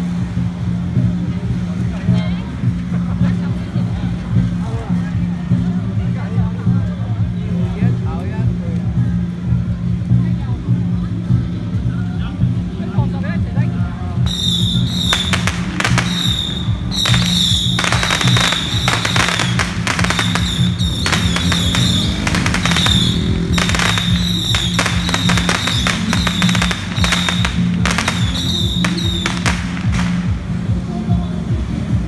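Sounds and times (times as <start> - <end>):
steady low drone: 0.0 - 32.0
firecrackers crackling: 14.3 - 30.6
high warbling whistle: 16.0 - 27.6.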